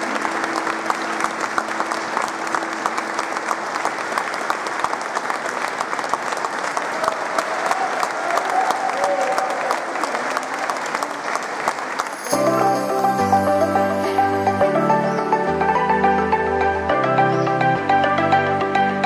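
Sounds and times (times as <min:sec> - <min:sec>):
audience applauding: 0:00.0 - 0:15.6.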